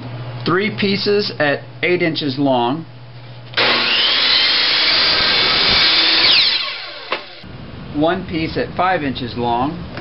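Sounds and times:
saw blade cutting pipe: 3.6 - 7.3
chop saw whining: 3.6 - 7.4.

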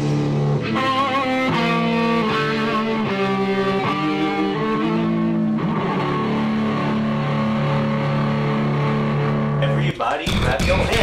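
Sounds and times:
electric guitars sustained chord: 0.0 - 9.6.

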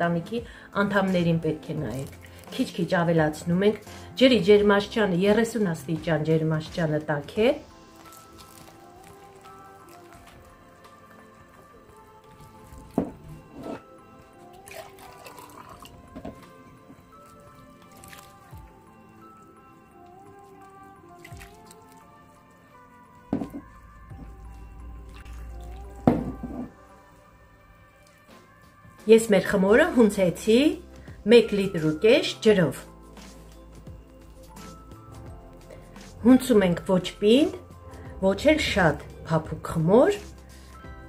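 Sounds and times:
soft background music: 0.0 - 41.0
hand mixing wet dough: 7.3 - 13.5, 14.2 - 26.4
water pouring into a bowl: 7.6 - 13.0, 14.4 - 22.5, 23.7 - 26.7.

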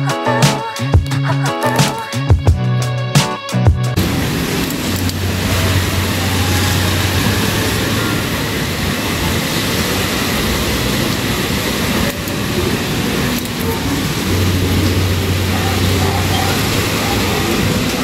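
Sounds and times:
rain falling: 3.9 - 18.0.

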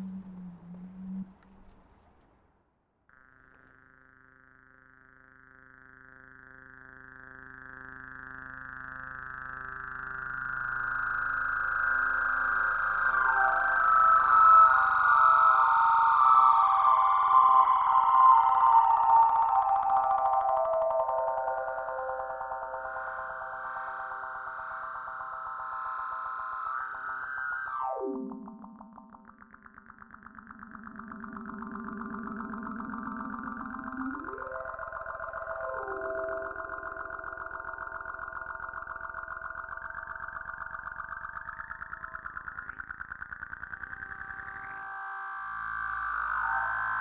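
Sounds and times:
electronic drone: 0.0 - 1.8, 3.1 - 47.0
higher tones sliding downward: 0.0 - 2.0, 10.9 - 47.0.

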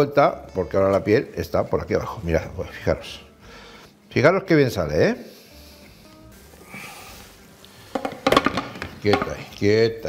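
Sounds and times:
kitchenware clattering: 7.9 - 9.5.

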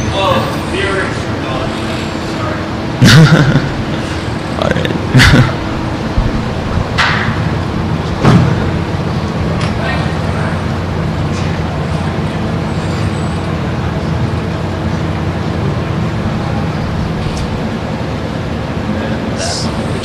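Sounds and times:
low room rumble: 0.0 - 20.0
faint audience murmur: 9.3 - 20.0.

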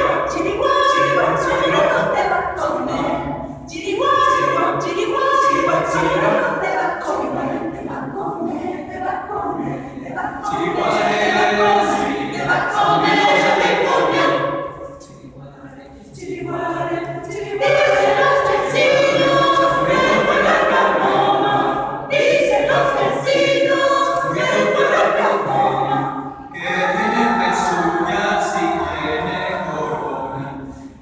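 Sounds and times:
mixed choir singing a cappella: 0.0 - 31.0.

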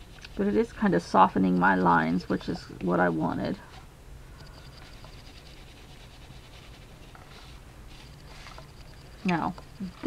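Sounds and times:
oil pastel scratching on paper: 0.0 - 3.8, 4.6 - 8.8
low room hum: 0.0 - 10.0.

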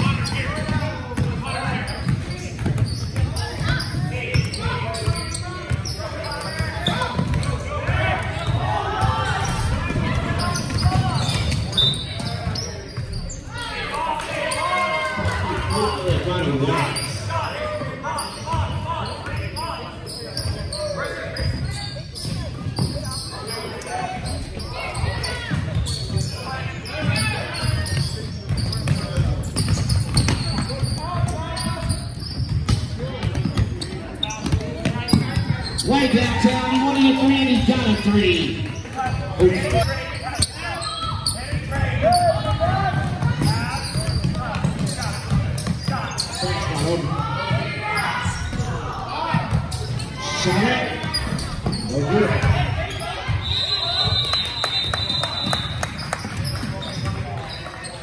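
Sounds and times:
echoing calls and chatter: 0.0 - 58.0.

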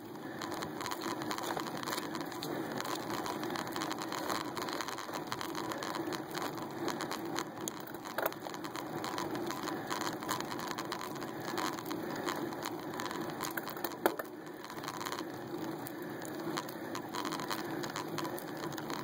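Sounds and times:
bicycle rattling and ticking: 0.0 - 19.0.

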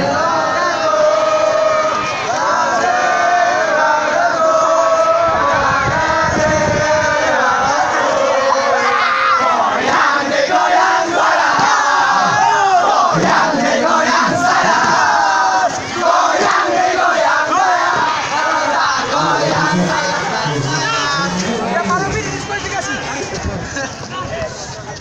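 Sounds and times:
group cheer shouting: 0.0 - 6.0, 7.2 - 21.2.

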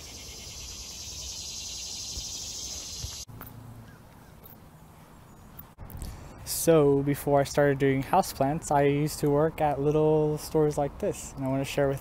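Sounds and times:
insects buzzing: 0.0 - 3.3
faint outdoor background noise: 0.0 - 12.0.

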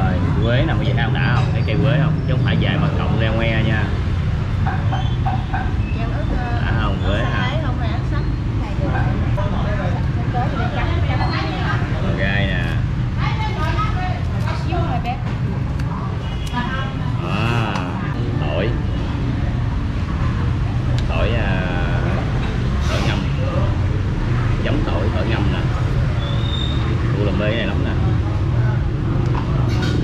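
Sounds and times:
people talking indistinctly: 0.0 - 29.3
low rumble of street traffic: 0.0 - 30.0.

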